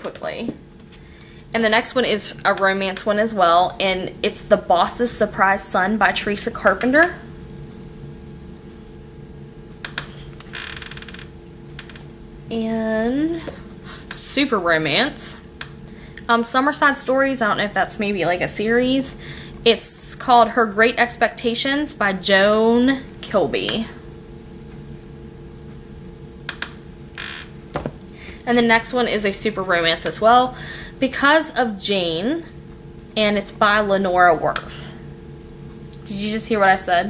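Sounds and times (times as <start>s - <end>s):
faint steady hum: 0.0s - 37.0s
sharp tap on book: 27.8s - 28.0s.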